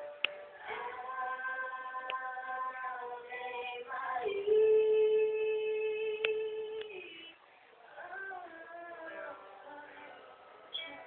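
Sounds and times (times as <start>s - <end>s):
women singing long held note: 0.0s - 11.0s.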